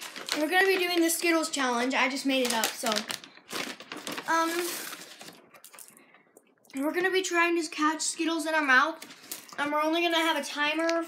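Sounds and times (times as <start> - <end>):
plastic candy bag crinkling: 0.0 - 6.0, 8.8 - 11.0
girl saying um: 4.3 - 5.0.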